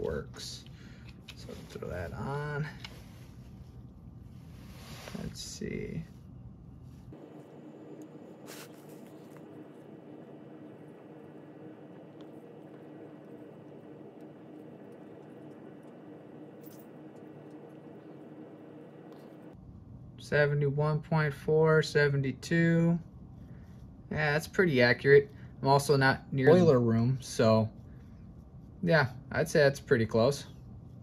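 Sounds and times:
low hum: 0:00.0 - 0:31.0.

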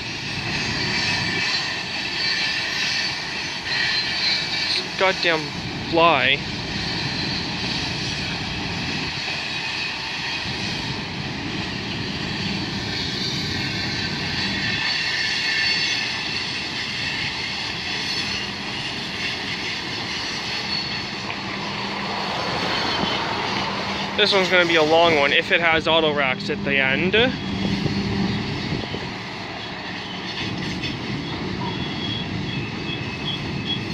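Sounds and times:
freight train cars rolling: 0:00.0 - 0:33.9.

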